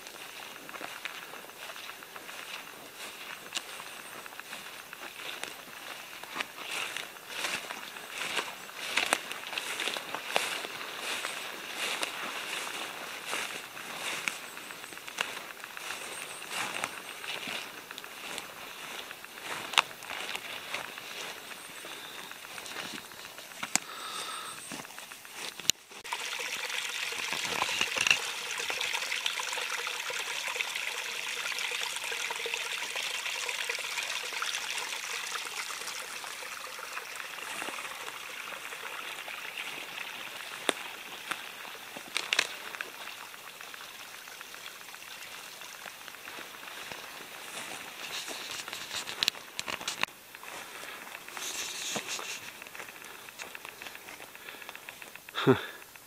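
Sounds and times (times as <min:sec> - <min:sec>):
woodland stream trickling: 0:00.0 - 0:56.0.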